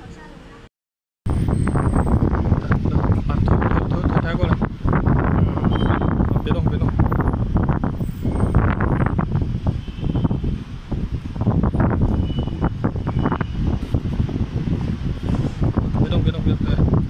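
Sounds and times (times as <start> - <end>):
wind buffeting microphone: 1.3 - 17.0.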